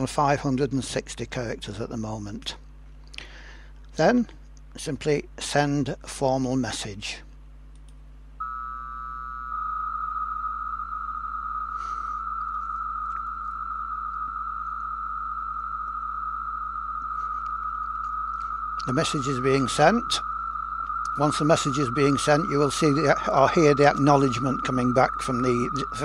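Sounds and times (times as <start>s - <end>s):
continuous data tone: 0.0s - 26.0s
steady tones: 8.4s - 26.0s.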